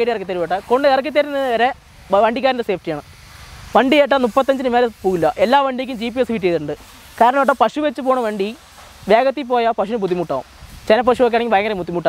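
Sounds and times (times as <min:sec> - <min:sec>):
person talking: 0:00.0 - 0:03.1, 0:03.7 - 0:12.0.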